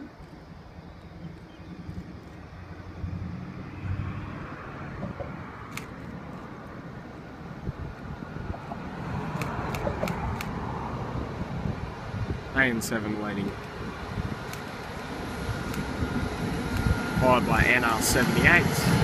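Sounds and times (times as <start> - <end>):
diesel locomotive engine drone: 0.0 - 19.0
sharp clicks: 5.0 - 6.4, 9.3 - 10.6, 14.5 - 15.0.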